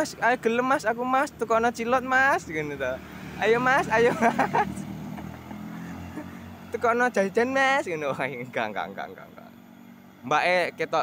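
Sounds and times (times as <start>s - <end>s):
motor scooters riding past: 0.0s - 10.8s.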